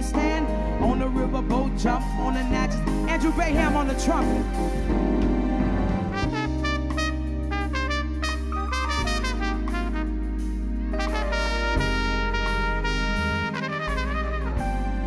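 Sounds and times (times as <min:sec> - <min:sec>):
live band music: 0:00.0 - 0:15.0
trumpet melody: 0:00.0 - 0:15.0.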